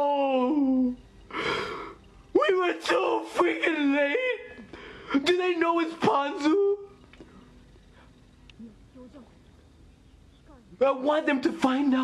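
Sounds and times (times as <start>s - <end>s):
high wavering cry: 0.0s - 9.4s
man sobbing breath: 0.6s - 2.0s.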